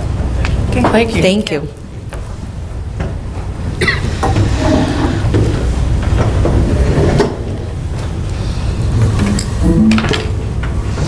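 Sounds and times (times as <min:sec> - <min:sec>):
low room noise rumble: 0:00.0 - 0:11.0.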